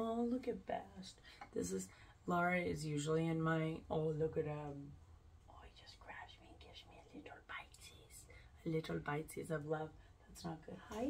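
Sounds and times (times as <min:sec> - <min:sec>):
woman whispering: 0:04.4 - 0:09.2, 0:10.2 - 0:11.0.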